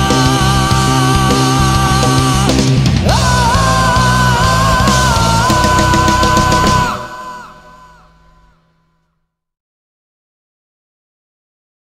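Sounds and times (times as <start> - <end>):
heavy rock song final notes: 0.0 - 8.5.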